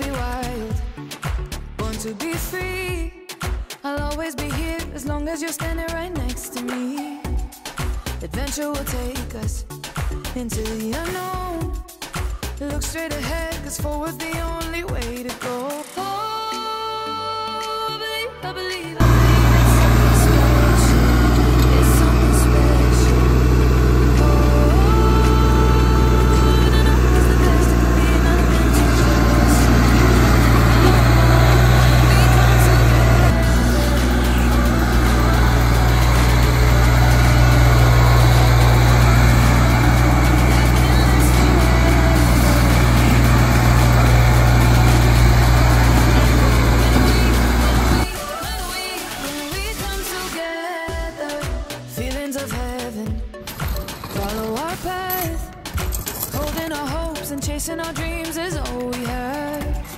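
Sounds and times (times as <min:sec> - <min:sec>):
loader bucket dragging ground: 0:19.0 - 0:48.1, 0:53.5 - 0:55.1
tractor diesel engine running: 0:19.0 - 0:48.1.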